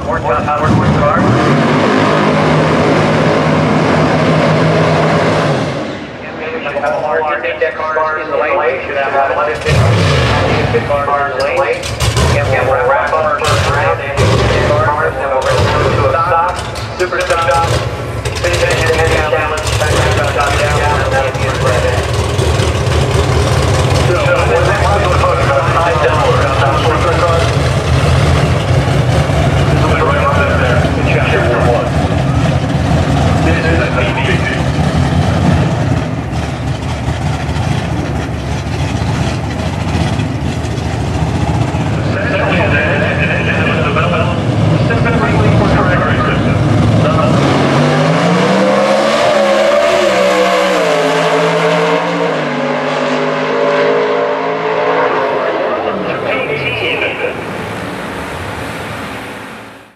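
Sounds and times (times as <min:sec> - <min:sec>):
drag car engine revving: 0:00.0 - 0:59.9.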